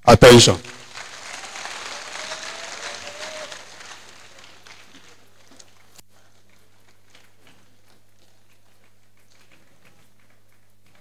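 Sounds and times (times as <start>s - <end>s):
audience applauding: 0.3s - 11.0s.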